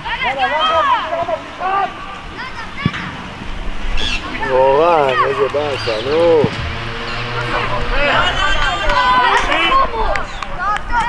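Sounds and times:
high-pitched shouting voices: 7.2 - 11.0.

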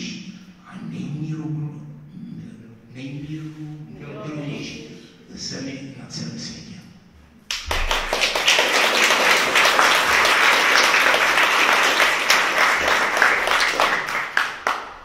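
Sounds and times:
audience applauding: 7.5 - 15.0.

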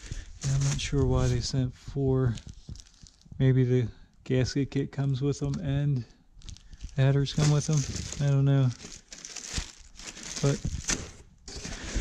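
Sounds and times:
plastic packaging crinkling: 0.0 - 1.3, 2.3 - 3.4, 6.4 - 12.0.

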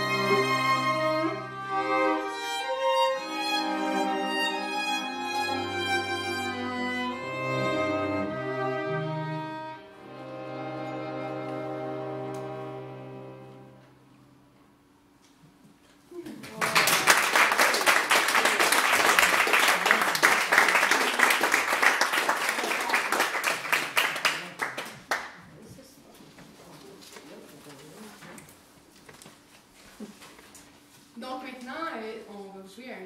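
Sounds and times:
audience clapping: 16.3 - 25.5
quiet murmuring: 25.4 - 28.7.

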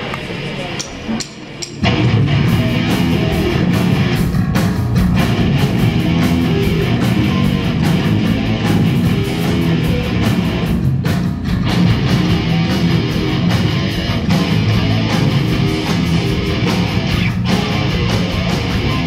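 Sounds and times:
live rock band: 1.8 - 19.0.

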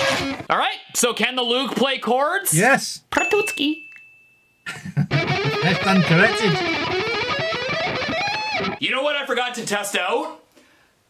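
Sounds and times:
electric guitar chords: 5.1 - 8.8.

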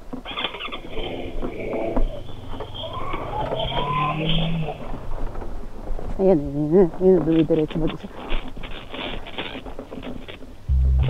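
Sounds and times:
knocks and rattles from bumps: 0.0 - 10.7.

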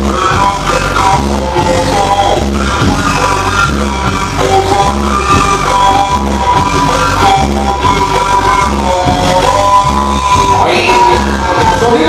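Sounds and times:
latin dance music over speakers: 0.0 - 12.0.

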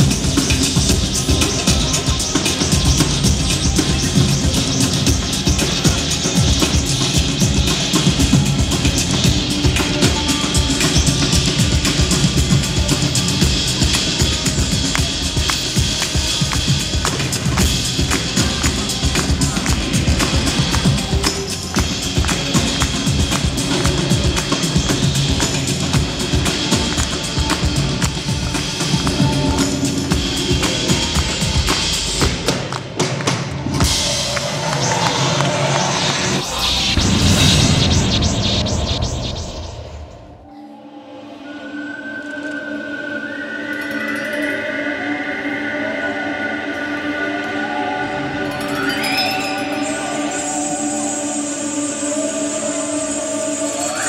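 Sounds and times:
drum and percussion music: 0.0 - 39.6.

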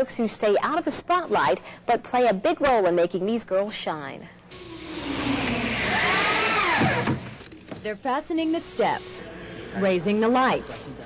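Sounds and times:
power drill whine: 4.5 - 7.8, 8.4 - 10.7.

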